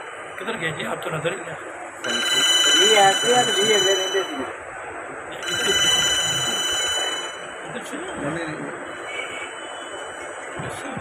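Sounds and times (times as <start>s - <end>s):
high ringing tone: 2.0s - 4.7s, 5.3s - 10.5s.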